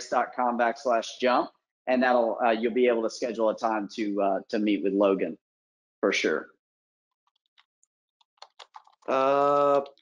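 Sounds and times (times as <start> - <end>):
typing on a keyboard: 8.4 - 9.0.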